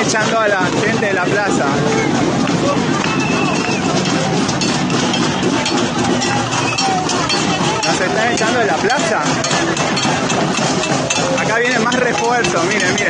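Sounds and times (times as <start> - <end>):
crowd of protesters shouting: 1.5 - 13.0.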